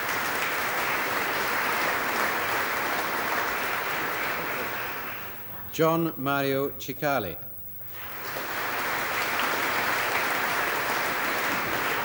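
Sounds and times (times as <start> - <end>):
audience applauding: 0.0 - 5.7, 7.9 - 12.0.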